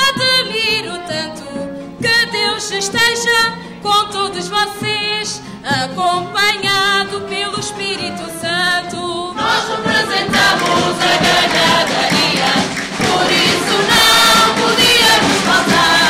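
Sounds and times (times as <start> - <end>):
guitars accompanying: 0.0 - 16.0
woman singing with vibrato: 0.0 - 16.0
mixed chorus singing: 9.4 - 16.0.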